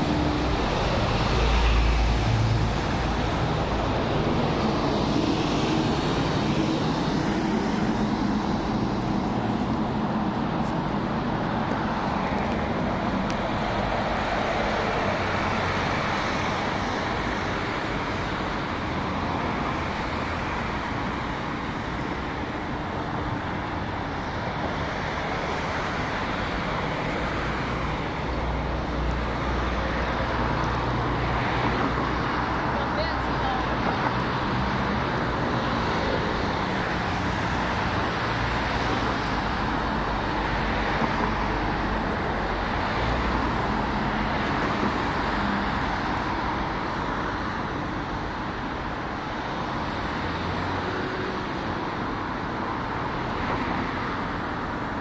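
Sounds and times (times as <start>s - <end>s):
road traffic noise: 0.0s - 55.0s.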